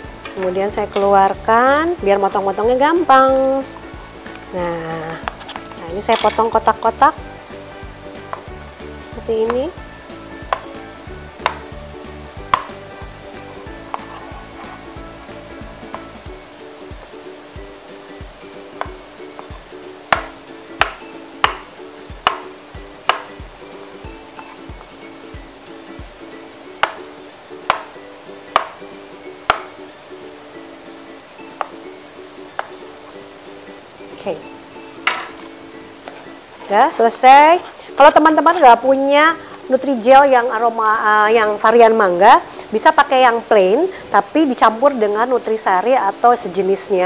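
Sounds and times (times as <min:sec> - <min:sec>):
background music: 0:00.0 - 0:47.0
knife tapping on plastic cutting board: 0:08.2 - 0:08.5, 0:09.4 - 0:09.7, 0:10.4 - 0:10.8, 0:11.4 - 0:11.8, 0:12.4 - 0:12.8, 0:13.8 - 0:14.8, 0:18.8 - 0:23.4, 0:26.8 - 0:28.8, 0:29.4 - 0:29.8, 0:31.6 - 0:31.8, 0:32.5 - 0:32.8, 0:35.0 - 0:36.2.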